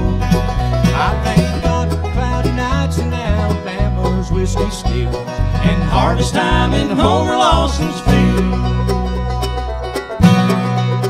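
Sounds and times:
acoustic guitars: 0.0s - 11.0s
banjo: 0.0s - 11.0s
bass notes: 0.0s - 11.0s
mandolin: 0.0s - 11.0s.

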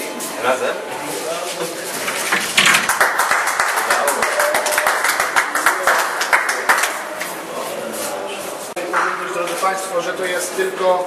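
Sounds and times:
applause: 2.7s - 7.3s
people talking: 4.0s - 11.0s.

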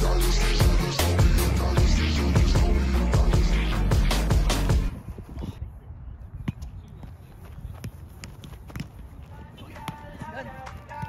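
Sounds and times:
players moving on grass: 6.3s - 11.0s
players' voices: 9.2s - 11.0s.

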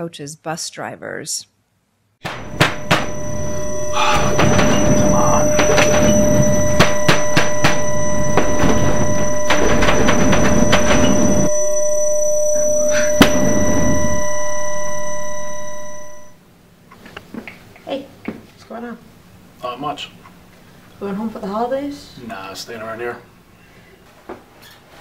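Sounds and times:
knocks and thuds: 2.2s - 11.5s
droning soundtrack: 2.3s - 16.3s.

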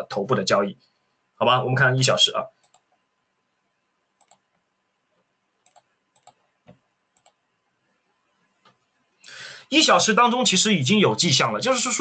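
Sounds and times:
faint computer mouse clicks: 2.6s - 2.9s, 4.2s - 4.6s, 5.2s - 7.4s.

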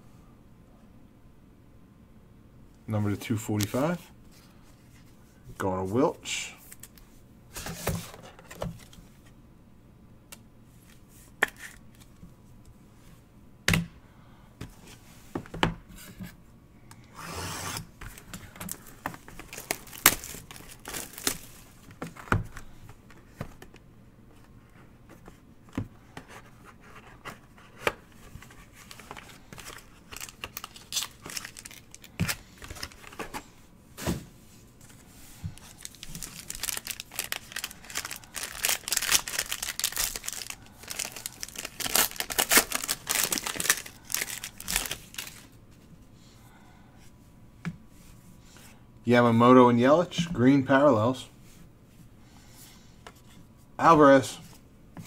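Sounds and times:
card wrapper tearing and crinkling: 18.1s - 21.6s, 28.7s - 33.4s, 35.6s - 45.5s.

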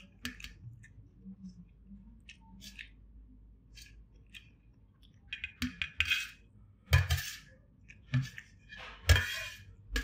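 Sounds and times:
spoon scraping metal plate: 5.3s - 10.0s.

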